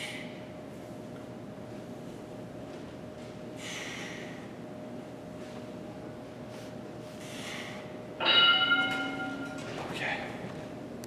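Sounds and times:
interval timer bell ringing: 8.2s - 9.7s.

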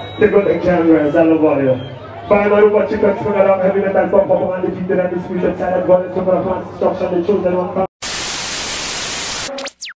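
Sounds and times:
quick falling whine: 8.0s - 10.0s
tv static hiss: 8.0s - 10.0s.

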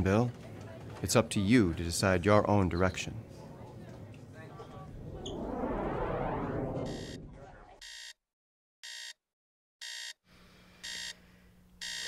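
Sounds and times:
rushing noise: 4.5s - 7.8s
alarm clock beeping: 7.8s - 8.2s, 8.8s - 9.2s, 9.8s - 10.2s, 10.8s - 11.2s.

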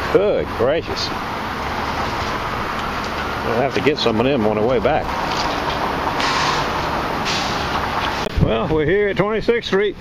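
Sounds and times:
running car rushing noise: 0.0s - 8.9s.

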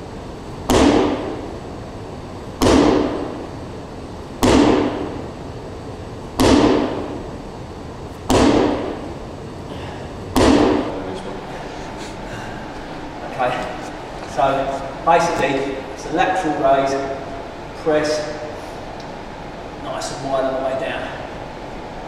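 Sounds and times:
medicine ball impacts: 0.6s - 1.6s, 2.6s - 3.5s, 4.4s - 5.3s, 6.3s - 7.3s, 8.2s - 9.2s, 10.3s - 11.1s
hall echo: 9.8s - 18.9s.

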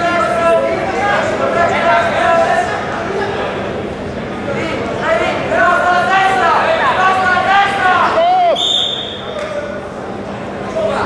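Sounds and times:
referee's whistle: 8.5s - 9.4s.

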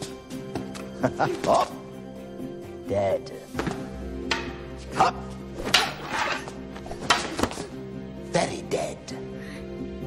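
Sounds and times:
background music with held tones: 0.0s - 10.0s
wooden swords striking: 3.6s - 4.8s, 5.6s - 7.7s.

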